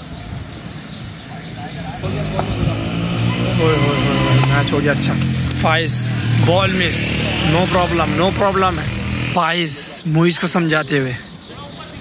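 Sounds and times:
voices in background: 0:01.0 - 0:12.0.

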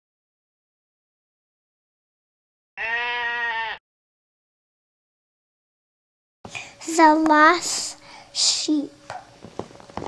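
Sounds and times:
sheep bleating: 0:02.8 - 0:03.8.

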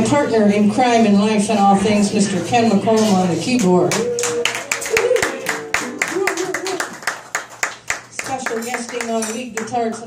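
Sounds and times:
small audience applause: 0:03.9 - 0:10.0.

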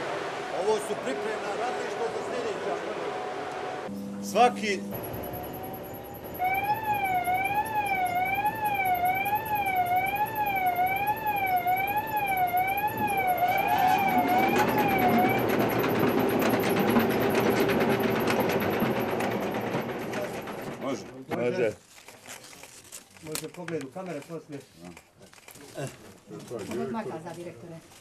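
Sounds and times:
conveyor machinery whine: 0:00.0 - 0:20.9
warbling warning siren: 0:04.9 - 0:19.1.

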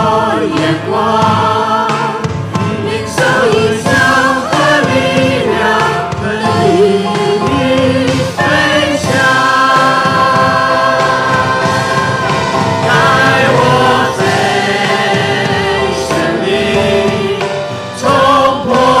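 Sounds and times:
group singing praise song: 0:00.0 - 0:19.0
live band playing: 0:01.7 - 0:19.0.

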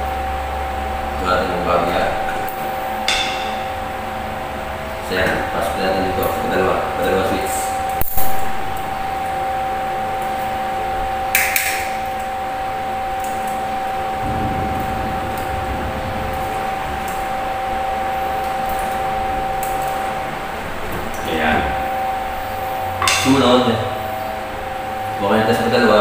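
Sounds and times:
steady hum: 0:00.0 - 0:26.0.

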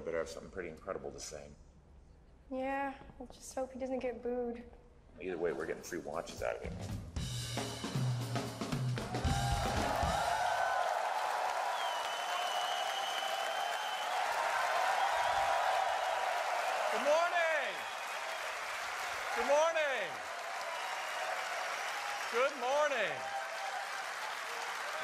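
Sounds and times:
audience applauding: 0:09.0 - 0:25.0
loud whoops: 0:09.0 - 0:25.0.

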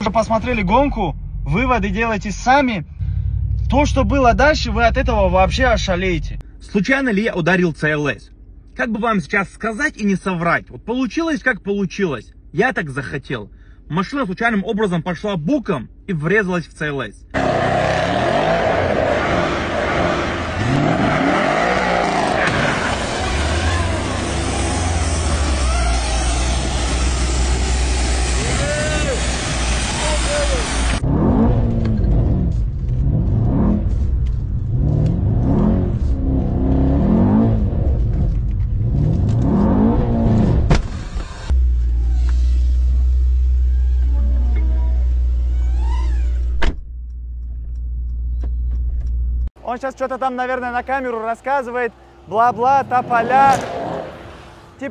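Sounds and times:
car engine accelerating through gears: 0:17.4 - 0:44.2.

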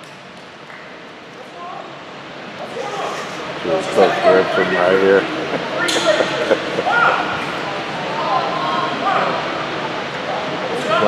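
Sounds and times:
faint voices chattering: 0:01.2 - 0:11.0
person laughing: 0:05.0 - 0:07.6.

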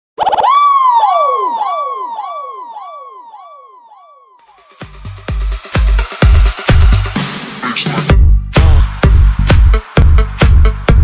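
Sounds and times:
electronic siren effect with echo: 0:00.2 - 0:04.9.

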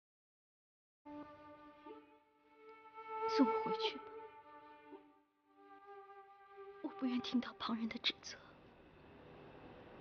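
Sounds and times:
woman whispering: 0:06.8 - 0:08.6.

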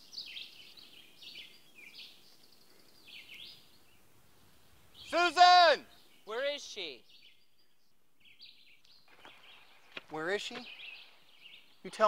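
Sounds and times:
faint birds chirping: 0:00.0 - 0:12.0
man calling out: 0:05.0 - 0:07.0.

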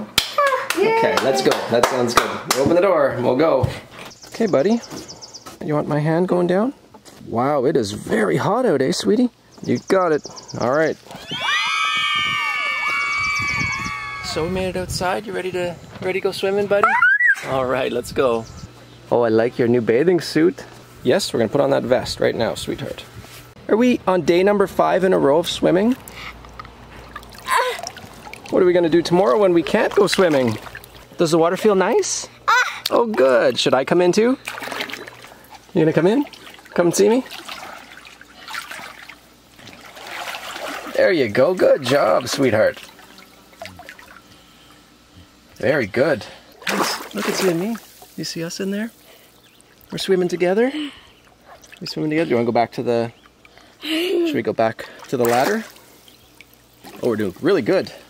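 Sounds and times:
pool water splashing: 0:11.0 - 0:15.6, 0:23.8 - 0:32.2, 0:32.8 - 0:45.0, 0:45.6 - 0:58.0
girl squealing: 0:11.1 - 0:14.4, 0:16.8 - 0:17.5, 0:27.4 - 0:27.9, 0:32.5 - 0:32.9.

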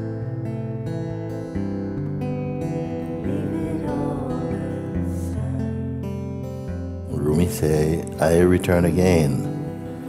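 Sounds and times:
acoustic guitar playing: 0:00.0 - 0:10.0.

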